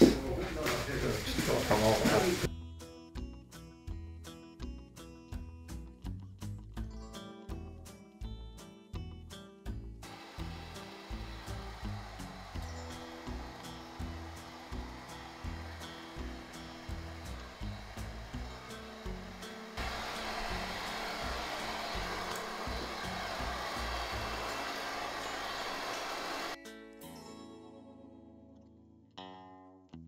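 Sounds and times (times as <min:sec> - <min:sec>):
background music with beat: 0:00.0 - 0:27.2
hair dryer blowing: 0:00.7 - 0:02.5, 0:10.0 - 0:26.6.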